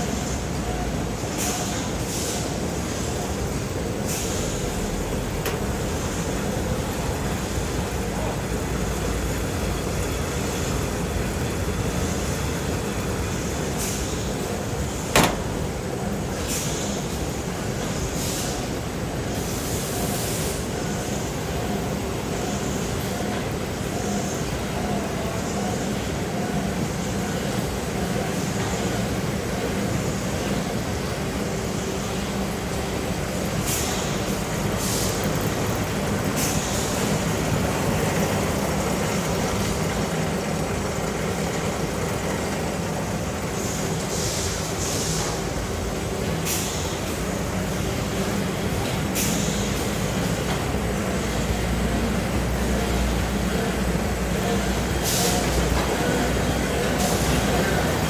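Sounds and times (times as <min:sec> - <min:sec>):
machinery humming and rumbling: 0:00.0 - 0:58.0.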